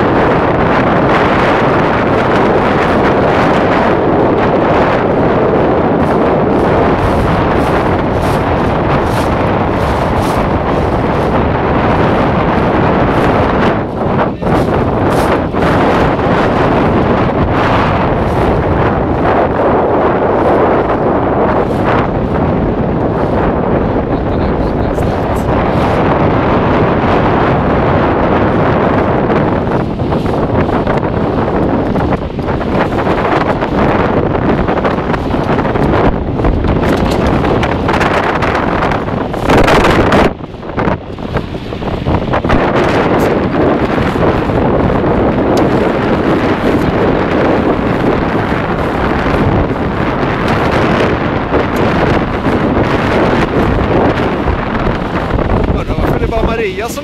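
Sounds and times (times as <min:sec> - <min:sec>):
water rushing along hull: 0:00.0 - 0:57.0
wind buffeting microphone: 0:00.0 - 0:57.0.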